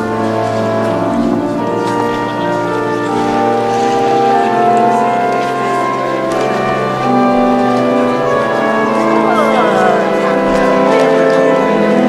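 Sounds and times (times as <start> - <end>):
organ playing slow chords: 0.0 - 12.0.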